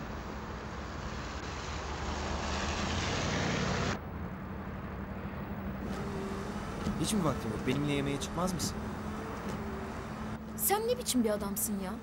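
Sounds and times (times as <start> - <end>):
truck engine hum: 0.0 - 12.0
tyres hissing on wet road: 0.7 - 4.0.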